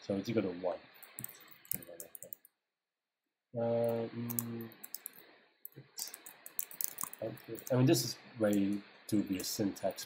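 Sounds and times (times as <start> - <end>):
computer keyboard typing: 1.0 - 2.4, 3.9 - 7.8.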